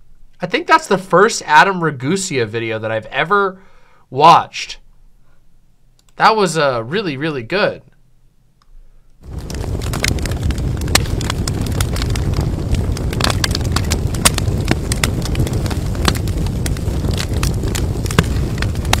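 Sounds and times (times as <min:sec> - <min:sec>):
fire crackling and roaring: 0:09.2 - 0:19.0.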